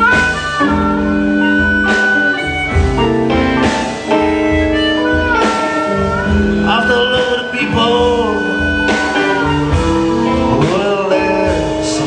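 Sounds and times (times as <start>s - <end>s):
lead instrument bending high notes: 0.0s - 11.6s
guitar chords: 0.0s - 12.0s.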